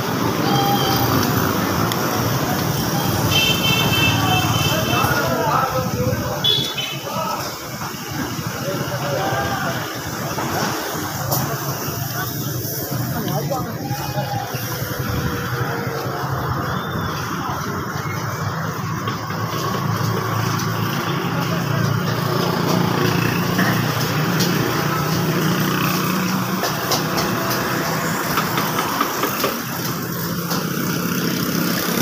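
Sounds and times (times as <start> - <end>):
traffic engine hum: 0.0 - 32.0.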